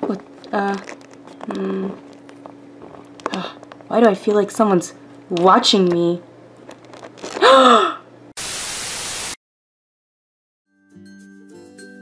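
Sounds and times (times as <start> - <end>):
burst of static hiss: 8.4 - 9.4.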